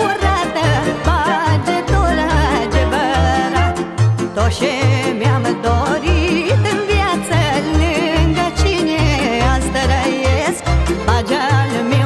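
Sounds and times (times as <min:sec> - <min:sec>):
folk band playing: 0:00.0 - 0:12.0
pulsing bass: 0:00.0 - 0:12.0
woman singing with vibrato: 0:00.0 - 0:12.0.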